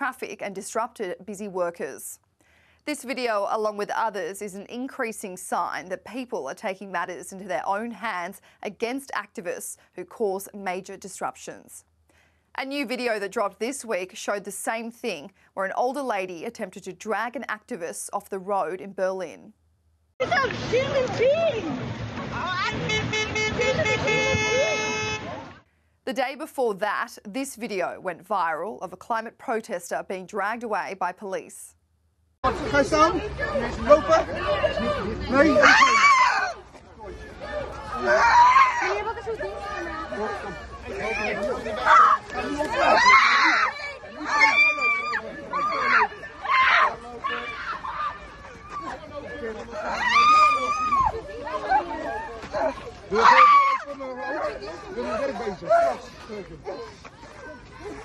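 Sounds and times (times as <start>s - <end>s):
voices: 20.2s - 31.7s, 32.5s - 58.0s
car horn honking: 22.7s - 25.5s.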